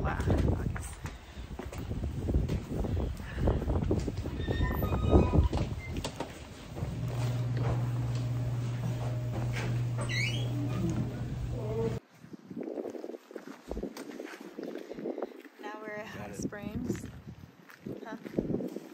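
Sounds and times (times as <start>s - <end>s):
rising squeak: 4.3s - 12.0s
steady low hum: 5.6s - 12.0s.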